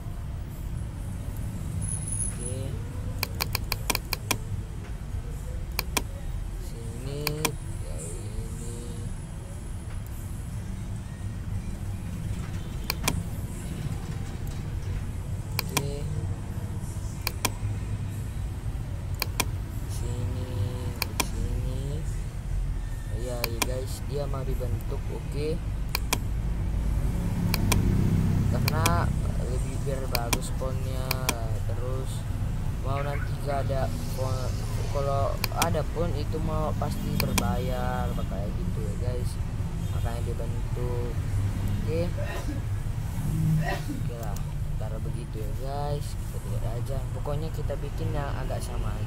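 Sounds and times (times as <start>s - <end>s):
computer mouse clicking: 3.2s - 4.4s, 5.7s - 6.1s, 7.2s - 7.6s, 12.8s - 13.2s, 15.5s - 15.9s, 17.2s - 17.6s, 19.1s - 19.6s, 20.9s - 21.4s, 25.9s - 26.3s, 27.4s - 28.0s, 28.6s - 29.0s, 30.1s - 31.4s, 35.4s - 35.8s, 37.0s - 37.5s.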